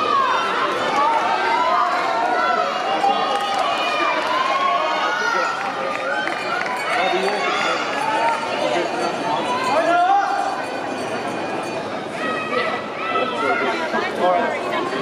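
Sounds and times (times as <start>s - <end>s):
overlapping chatter: 0.0s - 15.0s.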